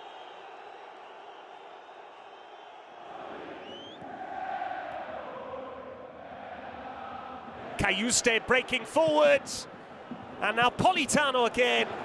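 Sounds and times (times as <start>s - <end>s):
stadium crowd chanting: 0.0s - 12.0s.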